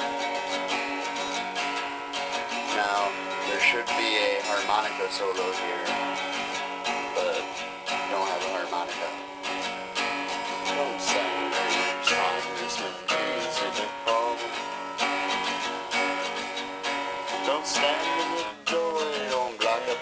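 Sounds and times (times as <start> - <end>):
acoustic guitar strumming chords: 0.0 - 20.0.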